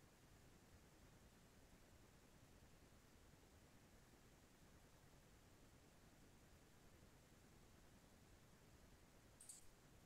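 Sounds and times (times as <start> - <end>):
faint high-pitched click: 9.4 - 9.8.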